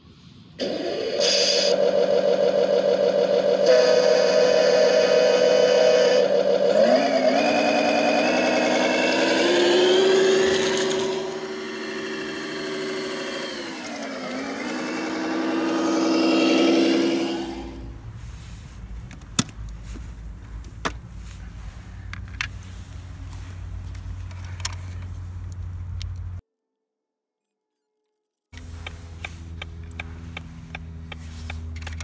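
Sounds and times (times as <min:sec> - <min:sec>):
simulated diesel truck engine: 0:00.0 - 0:26.4, 0:28.6 - 0:32.0.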